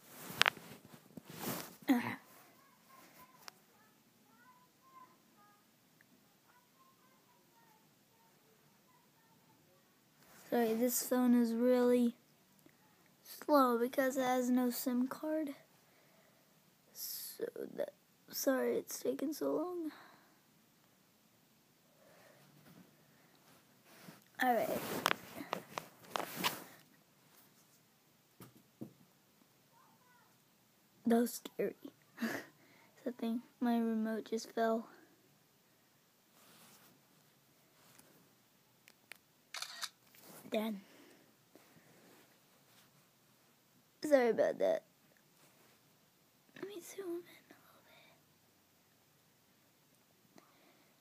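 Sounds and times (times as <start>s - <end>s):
boy speaking softly: 1.8s - 5.6s, 40.5s - 40.9s, 46.6s - 48.1s.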